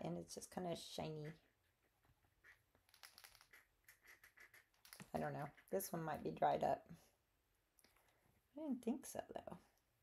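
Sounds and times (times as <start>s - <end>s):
brush pen scratching on paper: 1.1s - 5.8s.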